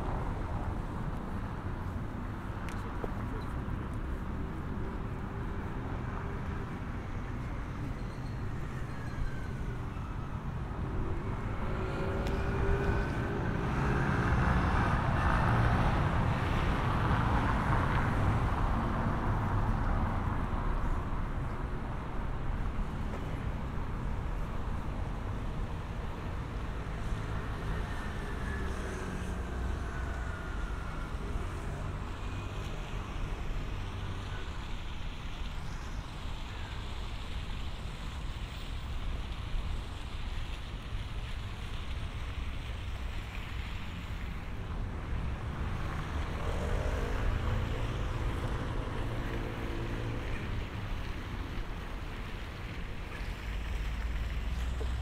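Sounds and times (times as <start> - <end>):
steady outdoor rush: 0.0 - 55.0.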